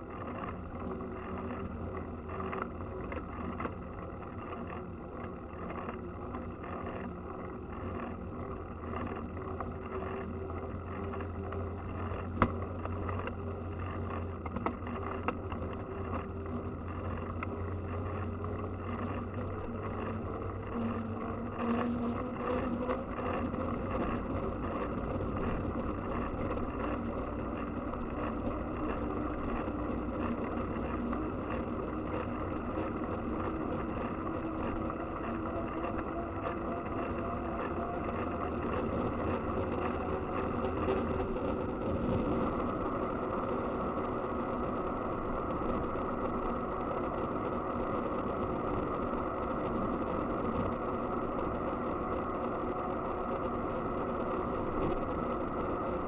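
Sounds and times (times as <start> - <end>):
bike tyres rolling on asphalt: 0.0 - 56.0.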